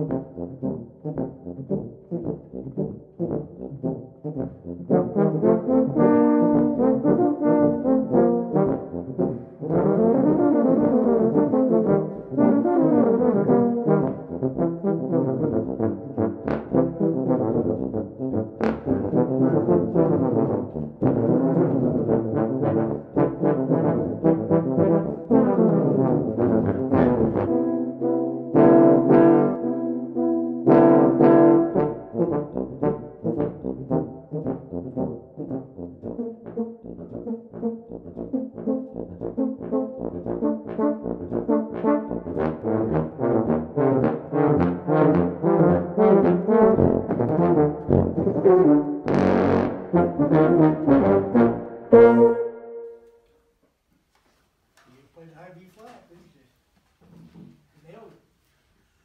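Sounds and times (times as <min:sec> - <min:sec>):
tuba ensemble playing detached notes: 0:00.0 - 0:53.2.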